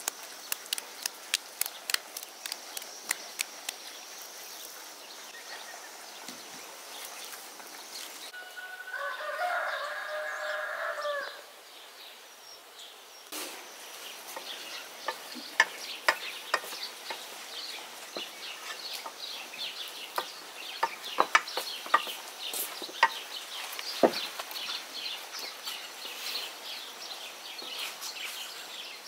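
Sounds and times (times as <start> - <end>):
rooster crowing: 8.3 - 11.5.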